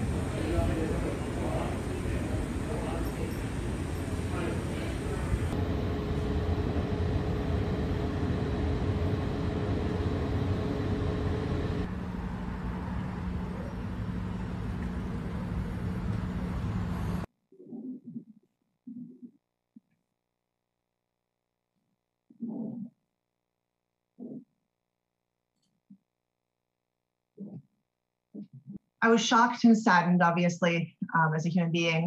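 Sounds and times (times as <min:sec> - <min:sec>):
city street traffic: 0:00.0 - 0:17.3
steady hum: 0:00.0 - 0:17.3
train platform ambience: 0:00.0 - 0:17.3.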